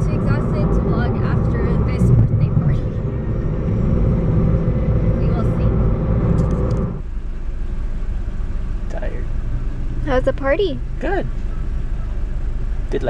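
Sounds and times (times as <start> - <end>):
road and engine noise in car: 0.0 - 13.0.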